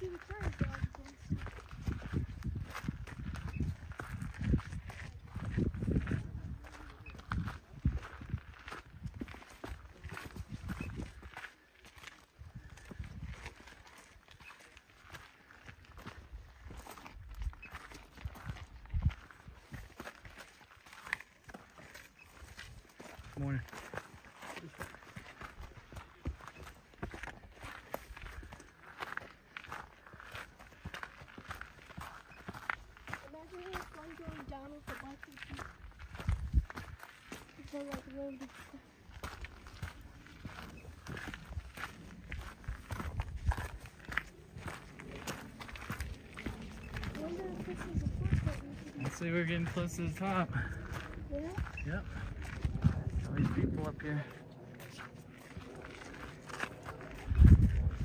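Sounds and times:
footsteps crunching on gravel: 0.0 - 58.0
low rumbling on microphone: 50.6 - 58.0.

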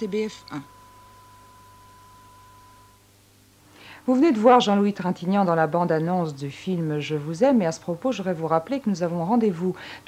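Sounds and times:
high-pitched tone: 0.0 - 3.1
faint hiss and low hum: 0.0 - 10.0.

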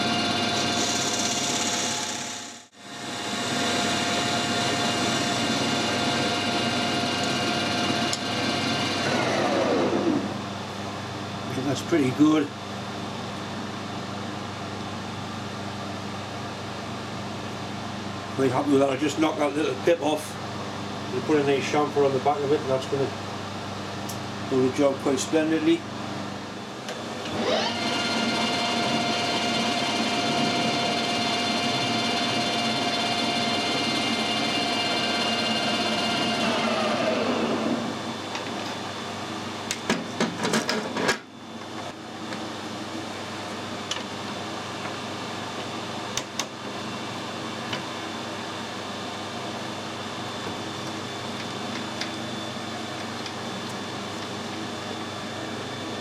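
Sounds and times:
lathe winding down: 0.0 - 2.6, 3.2 - 10.4, 27.2 - 38.0
lathe gear whine: 0.0 - 10.6, 26.9 - 39.7
workshop hum: 0.0 - 56.0.

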